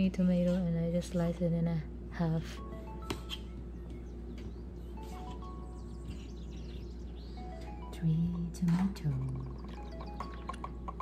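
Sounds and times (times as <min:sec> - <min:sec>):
soft instrumental music: 0:02.4 - 0:11.0.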